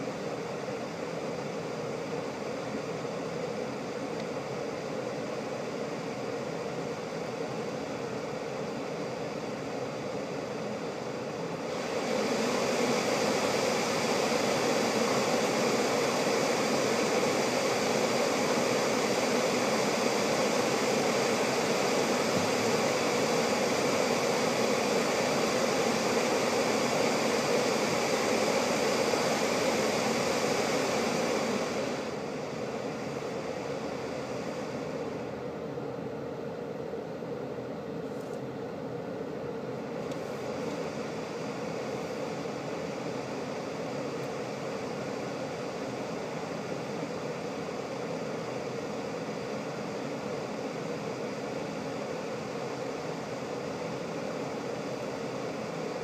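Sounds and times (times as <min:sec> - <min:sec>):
car air conditioning fan rushing: 0:00.0 - 0:56.0.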